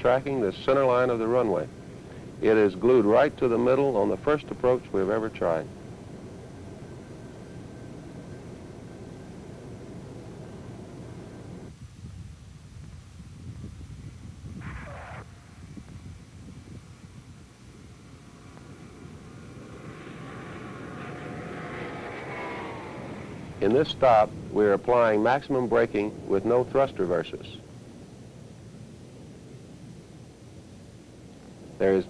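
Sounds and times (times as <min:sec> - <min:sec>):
jet engines: 0:00.0 - 0:11.8, 0:14.4 - 0:32.0
rising engine whine: 0:00.0 - 0:11.8, 0:14.5 - 0:32.0
cockpit noise: 0:14.5 - 0:16.0, 0:16.8 - 0:30.3.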